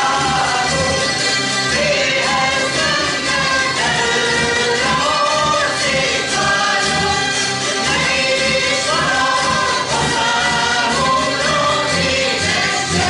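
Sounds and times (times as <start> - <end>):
group of voices singing: 0.0 - 13.0
zither ensemble strumming folk tune: 0.0 - 13.0.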